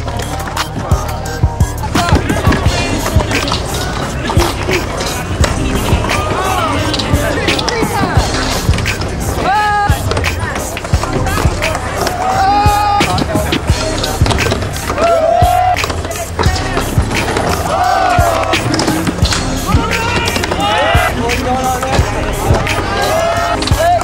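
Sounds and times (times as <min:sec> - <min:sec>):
music with beat and vocals: 0:00.0 - 0:24.0
skateboards rolling and landing: 0:00.0 - 0:24.0.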